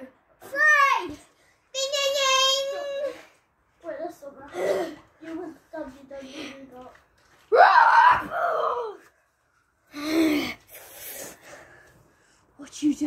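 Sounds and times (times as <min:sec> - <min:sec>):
boy crying out: 0:07.5 - 0:09.0
boy shouting: 0:07.5 - 0:09.0.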